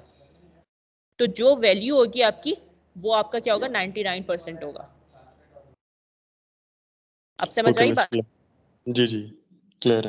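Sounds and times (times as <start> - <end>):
faint murmur: 7.6 - 8.2, 8.9 - 10.0.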